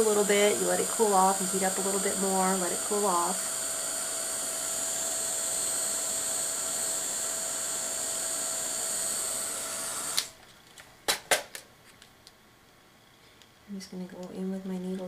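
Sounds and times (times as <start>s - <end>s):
heat gun blowing with whine: 0.0s - 10.4s.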